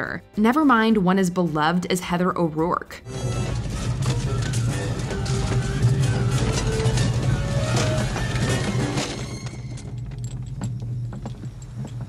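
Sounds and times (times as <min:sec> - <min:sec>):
held music notes: 0:03.0 - 0:10.1.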